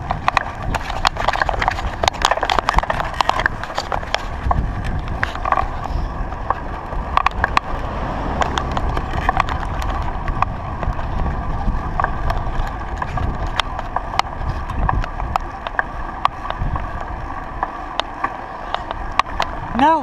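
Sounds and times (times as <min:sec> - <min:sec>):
bike rattling clicks and knocks: 0:00.0 - 0:07.8, 0:08.4 - 0:20.0
bicycle riding over asphalt: 0:00.0 - 0:20.0
wind rumble on microphone: 0:00.0 - 0:20.0.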